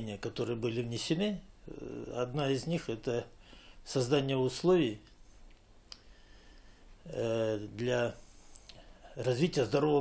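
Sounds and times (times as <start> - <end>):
faint click: 5.0 - 6.1.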